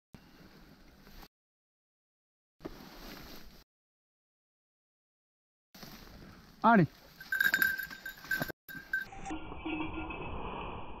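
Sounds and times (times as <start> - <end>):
collar bell jingling: 7.0 - 10.2.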